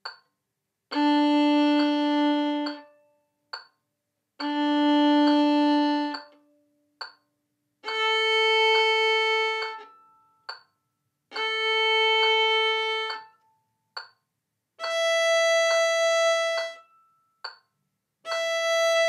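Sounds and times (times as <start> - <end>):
violin open string notes: 0.9 - 3.2, 4.4 - 6.6, 7.8 - 10.3, 11.3 - 13.4, 14.8 - 17.1, 18.2 - 19.0.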